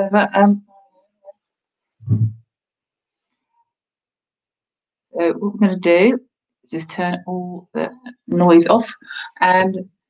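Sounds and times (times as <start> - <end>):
woman speaking: 0.0 - 0.7, 5.2 - 9.8.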